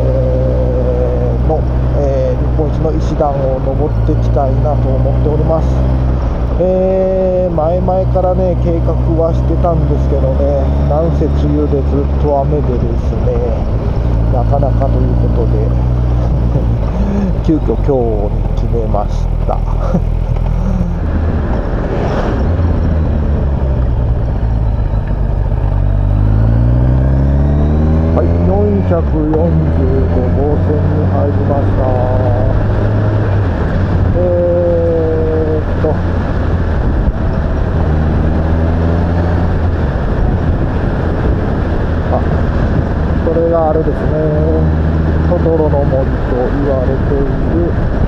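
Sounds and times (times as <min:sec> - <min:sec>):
motorcycle engine running: 0:00.0 - 0:48.0
wind noise: 0:11.6 - 0:48.0.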